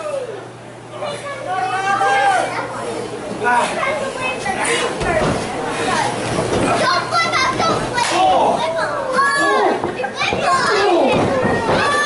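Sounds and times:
spectators shouting and yelling: 0:00.0 - 0:12.0.

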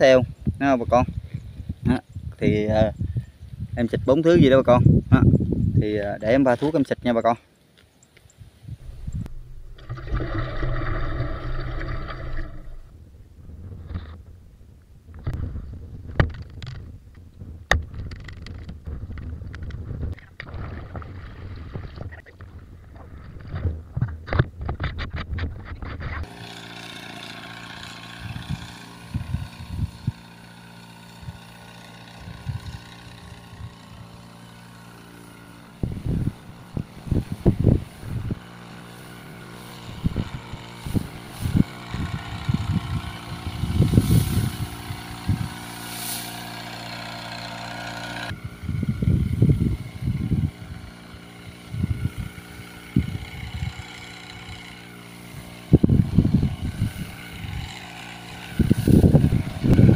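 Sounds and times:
sprayer small engine running: 0:08.9 - 0:12.9, 0:26.2 - 0:59.9.

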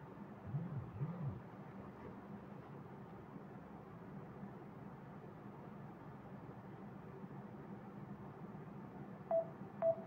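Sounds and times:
faint room hiss: 0:00.0 - 0:10.0
smartphone beeps: 0:09.3 - 0:10.0.

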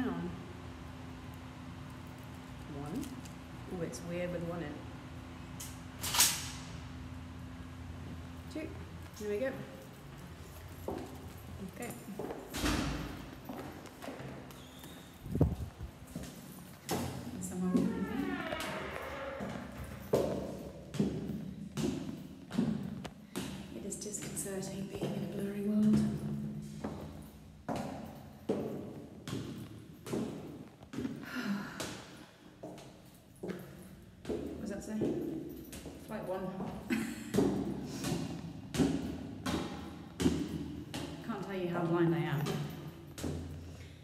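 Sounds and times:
footsteps climbing stairs: 0:09.0 - 0:44.0.

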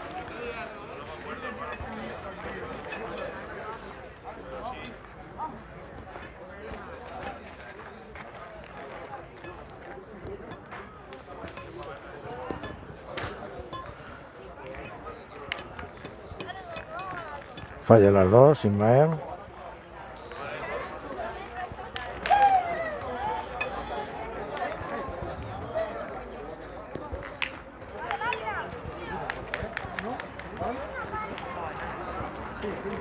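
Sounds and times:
murmur of voices: 0:00.0 - 0:33.0
metal boules knocking together: 0:01.7 - 0:03.5, 0:04.7 - 0:06.4, 0:09.3 - 0:18.2, 0:23.5 - 0:24.1, 0:26.9 - 0:27.6.

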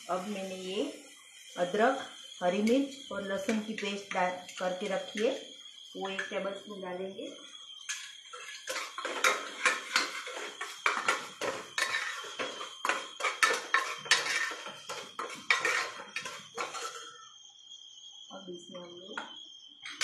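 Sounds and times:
spoon scraping metal pot: 0:07.9 - 0:17.2.

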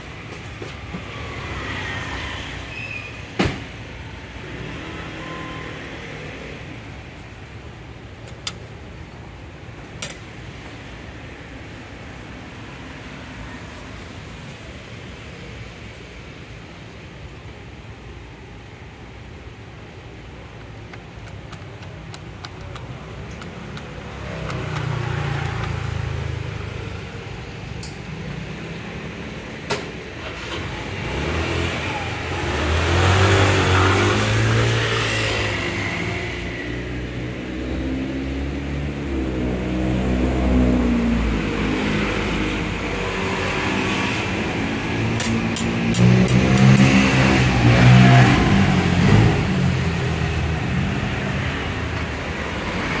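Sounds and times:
road traffic noise: 0:00.0 - 0:53.0
metal keypad buttons clicking: 0:20.9 - 0:25.8.

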